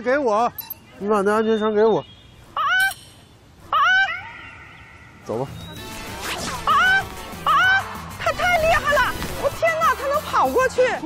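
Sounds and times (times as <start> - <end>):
person crying out: 6.7 - 7.9.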